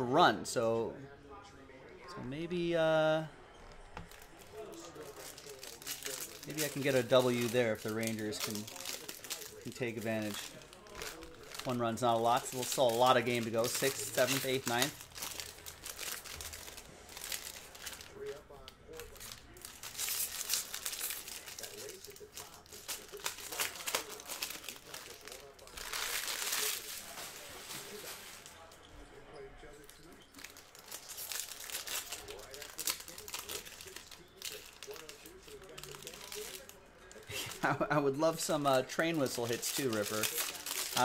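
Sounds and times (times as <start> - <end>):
foil wrappers crinkling and tearing: 4.0 - 28.8, 29.8 - 41.0.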